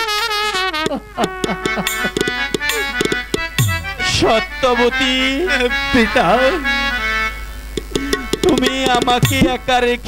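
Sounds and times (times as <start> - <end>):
reedy melody instrument: 0.0 - 9.8
hand drum strokes: 0.8 - 3.8, 7.8 - 9.5.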